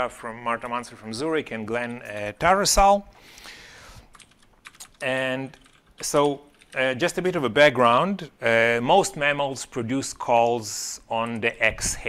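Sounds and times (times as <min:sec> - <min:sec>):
laptop keys clicking: 0:04.0 - 0:06.8.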